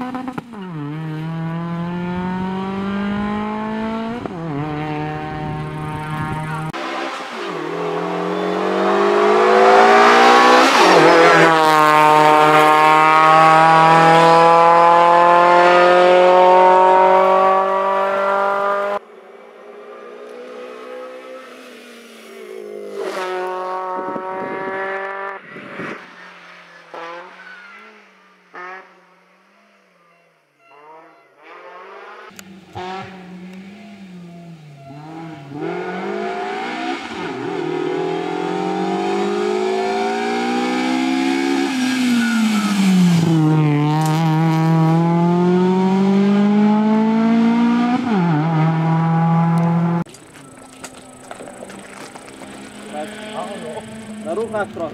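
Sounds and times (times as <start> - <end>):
rally car engine revving: 0.0 - 19.0, 19.6 - 29.3, 30.7 - 50.2, 50.8 - 54.9.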